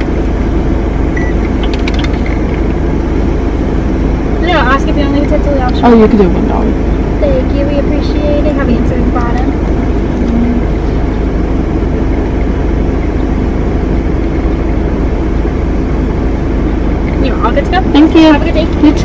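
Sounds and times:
car idling inside cabin: 0.0 - 19.0.

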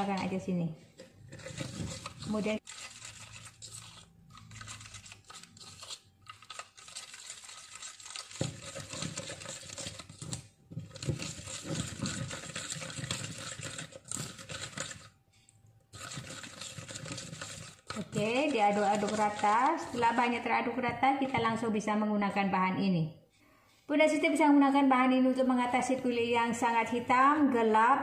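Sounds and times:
spoon scraping gritty mix in bowl: 0.0 - 15.2, 15.9 - 20.5.

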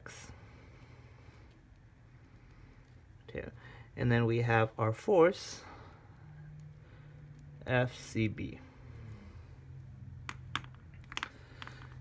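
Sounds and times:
faint low hum: 0.0 - 12.0
plastic pens clicking: 10.2 - 12.0.

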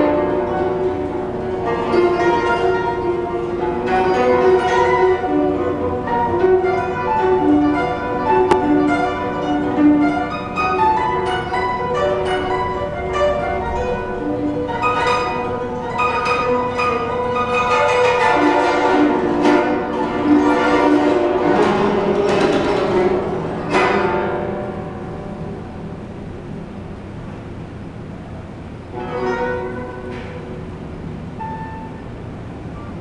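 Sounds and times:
zither plucked notes: 0.0 - 33.0.

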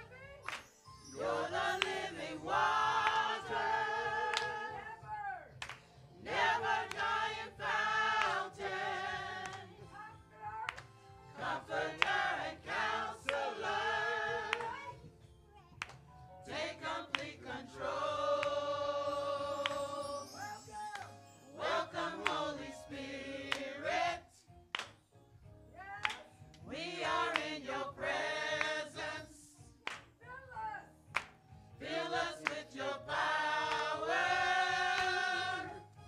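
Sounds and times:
hand claps: 0.4 - 0.8, 1.8 - 2.1, 3.0 - 3.3, 4.3 - 4.6, 5.6 - 7.3, 8.2 - 8.5, 9.4 - 9.6, 10.7 - 11.0, 12.0 - 12.2, 13.2 - 13.5, 14.5 - 14.9, 15.8 - 16.1, 17.1 - 17.4, 19.6 - 19.8, 20.9 - 21.2, 22.2 - 22.4, 24.7 - 25.0, 26.0 - 26.6, 27.2 - 27.6, 28.6 - 28.8, 29.8 - 30.2, 31.1 - 31.4, 32.4 - 32.8, 33.7 - 33.9
gospel choir singing: 0.5 - 9.9, 10.7 - 15.0, 16.4 - 24.6, 26.6 - 30.0, 31.7 - 36.0.

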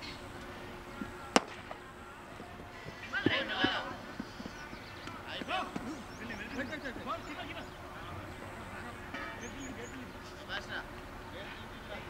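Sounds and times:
distant voices calling out: 0.0 - 12.0.

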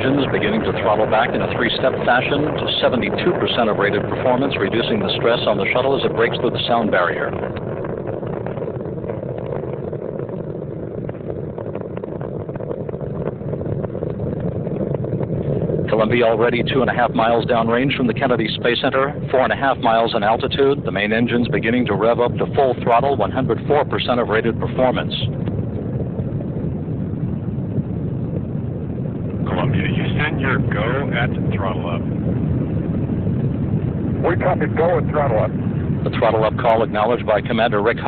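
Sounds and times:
low rocket rumble with crackle: 0.0 - 38.0.

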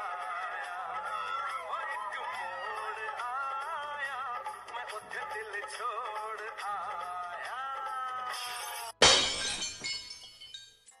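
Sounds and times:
glass shattering crash: 8.4 - 10.9
glass tinkling: 9.0 - 11.0.

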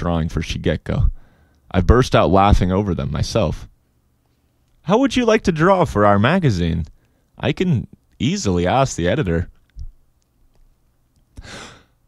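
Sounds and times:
person breathing in: 1.2 - 1.6, 11.4 - 12.0
person speaking: 4.8 - 10.0.

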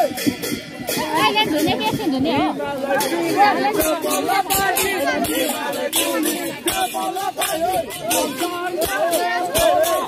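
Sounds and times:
children's voices: 0.0 - 10.0
crowd talking: 0.0 - 10.0.

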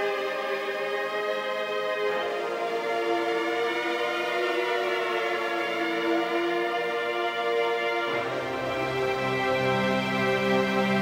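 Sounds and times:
synth pad sustained chord: 0.0 - 11.0.

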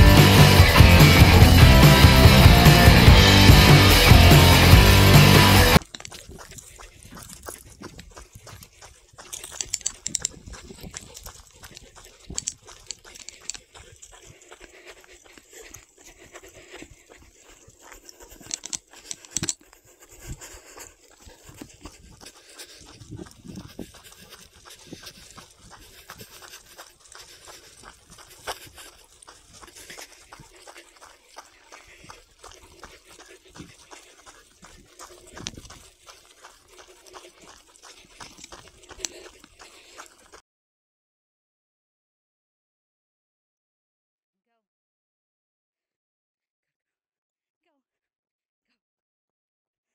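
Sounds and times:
dog panting: 0.0 - 40.4
footsteps on dry dirt trail: 0.0 - 40.4.

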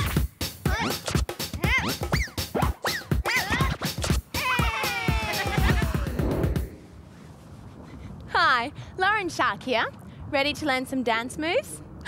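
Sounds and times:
cartoon-like pitched sounds: 0.7 - 6.2.

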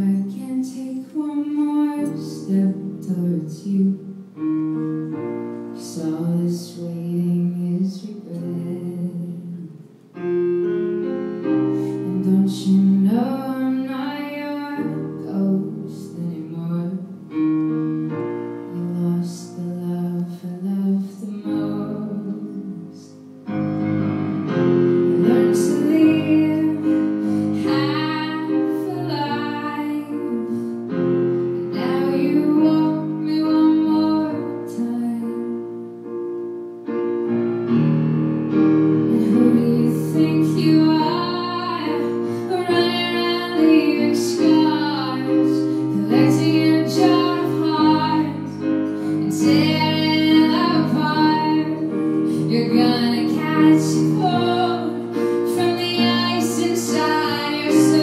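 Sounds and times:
woman singing a slow ballad: 0.0 - 10.3, 11.7 - 17.6, 18.2 - 23.3, 25.1 - 35.9, 39.1 - 58.0
grand piano chords: 0.0 - 58.0.

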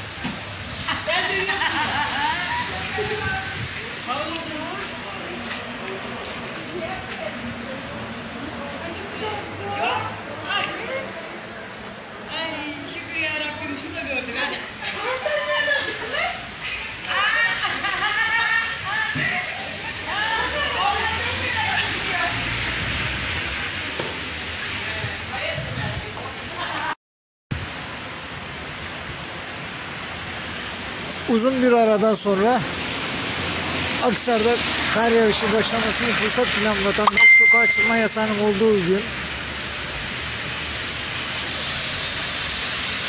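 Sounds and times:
wet snow falling hiss: 0.0 - 26.9, 27.6 - 43.0
wind rumble on microphone: 2.5 - 4.0, 25.0 - 26.4.

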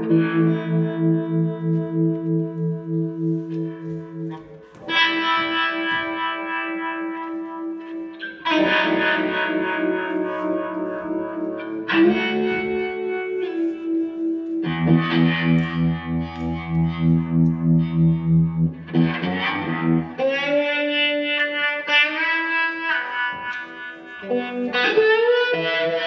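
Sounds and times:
distorted electric guitar chords: 0.0 - 26.0.

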